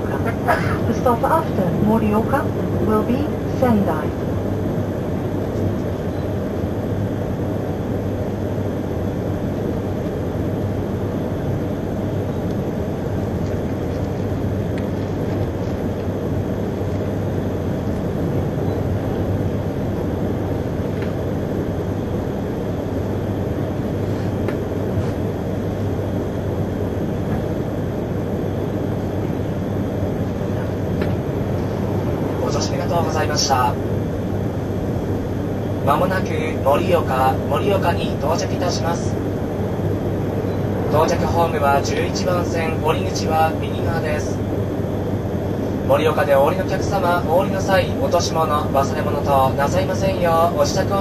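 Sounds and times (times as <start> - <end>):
train running noise: 0.0 - 6.5, 12.2 - 44.8.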